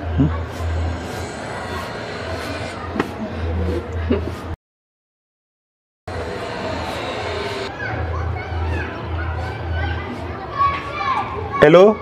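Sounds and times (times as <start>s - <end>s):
distant children calling out: 6.1s - 12.0s.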